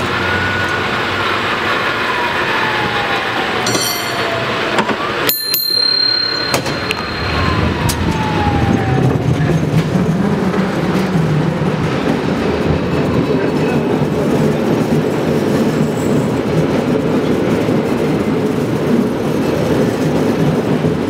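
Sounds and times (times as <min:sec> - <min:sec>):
cable car rumbling on rails: 0:00.0 - 0:21.0.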